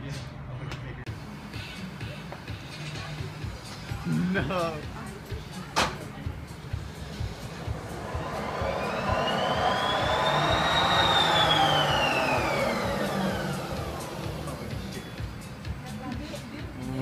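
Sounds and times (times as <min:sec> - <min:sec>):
background music: 0:01.1 - 0:17.0
rushing noise: 0:06.7 - 0:15.6
gliding whistling tone: 0:07.1 - 0:15.5.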